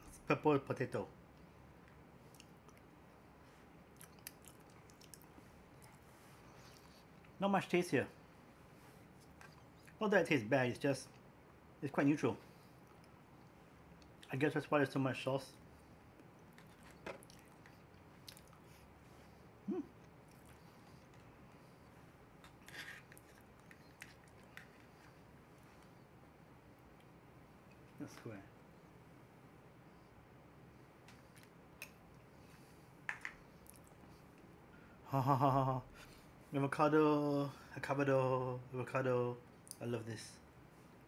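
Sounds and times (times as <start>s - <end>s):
faint chewing: 1.4s - 7.4s, 9.0s - 10.0s, 12.5s - 14.3s, 16.1s - 26.1s, 31.0s - 34.5s
small mouth clicks: 4.0s - 5.3s
person humming briefly: 19.7s - 20.0s.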